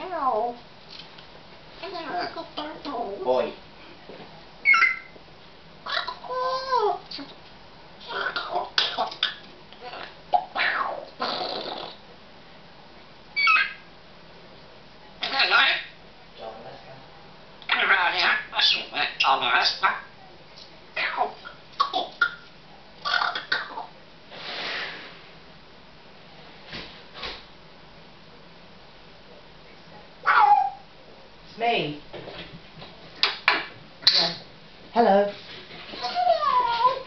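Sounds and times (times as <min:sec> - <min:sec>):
parrot high-pitched call: 0:04.6 - 0:05.2, 0:05.8 - 0:07.0, 0:08.0 - 0:11.4, 0:13.4 - 0:13.9, 0:15.2 - 0:16.0, 0:17.7 - 0:20.1, 0:21.0 - 0:23.9, 0:30.2 - 0:30.9
parrot beatbox vocal noises: 0:11.2 - 0:12.0, 0:23.0 - 0:23.8, 0:33.2 - 0:34.4.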